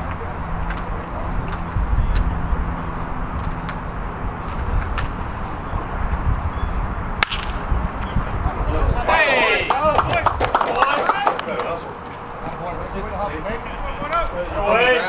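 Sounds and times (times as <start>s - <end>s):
low background rumble: 0.0s - 10.9s
bat cracking a ball: 7.2s - 8.1s.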